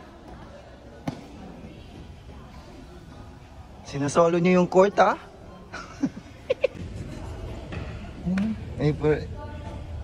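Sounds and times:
faint hall background noise: 0.0 - 10.0.

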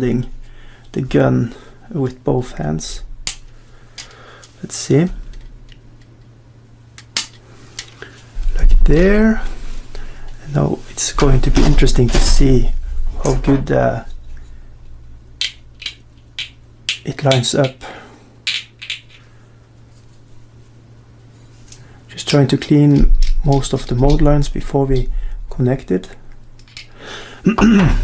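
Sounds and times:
plastic parts clicking: 15.4 - 17.8, 18.4 - 19.3, 26.6 - 26.9.

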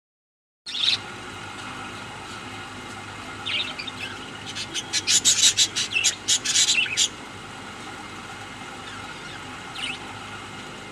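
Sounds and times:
budgerigars chattering: 0.7 - 1.0, 3.4 - 7.2, 8.8 - 10.1
budgerigar chirps: 3.5 - 7.2.

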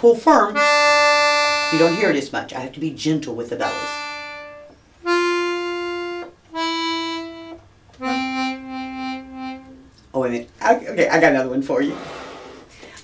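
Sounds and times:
accordion playing held notes: 0.4 - 2.3, 3.6 - 9.9.

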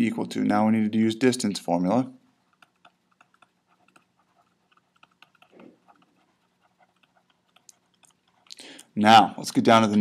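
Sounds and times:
stylus tapping on pen tablet: 2.4 - 8.6.

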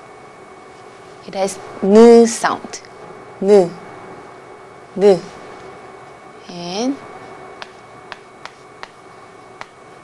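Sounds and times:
chalk clicking on blackboard: 7.6 - 9.0, 9.6 - 9.8.

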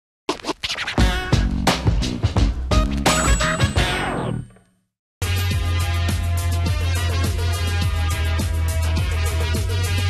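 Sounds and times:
scratch-like effects: 0.3 - 1.4
electronic theme music: 1.0 - 4.6, 5.2 - 10.0.

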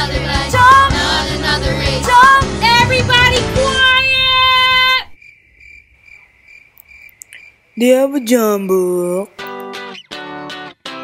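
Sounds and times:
cricket high-pitched trill: 5.2 - 9.2.

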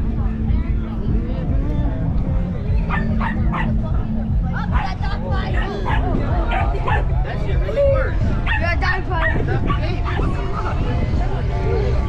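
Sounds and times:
dog barking: 2.9 - 3.8, 4.7 - 7.1, 8.4 - 8.6, 9.2 - 10.3.

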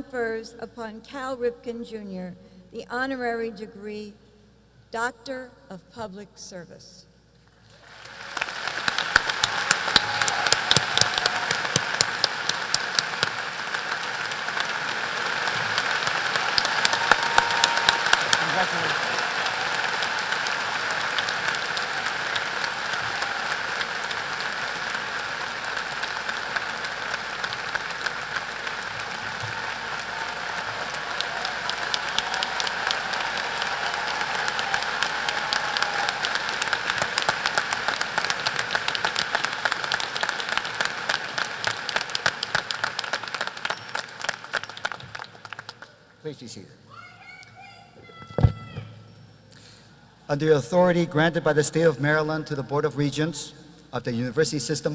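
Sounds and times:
large audience applauding: 7.6 - 46.2.

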